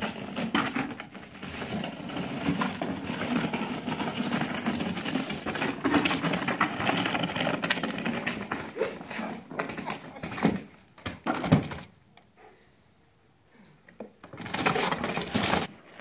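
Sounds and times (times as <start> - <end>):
cardboard boxes scraping on concrete: 0.0 - 10.7, 14.2 - 16.0.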